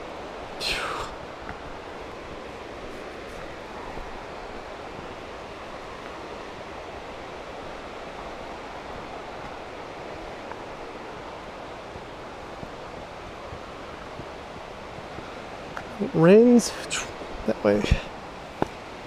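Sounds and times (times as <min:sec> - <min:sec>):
creek water rushing: 0:00.0 - 0:19.0.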